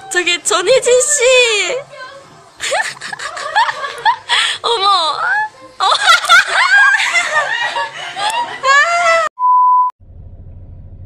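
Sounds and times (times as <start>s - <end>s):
woman laughing: 2.6s - 9.3s.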